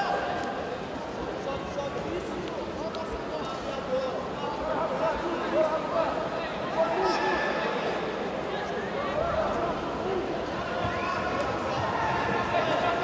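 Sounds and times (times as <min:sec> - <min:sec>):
spectators chattering and calling out: 0:00.0 - 0:13.0.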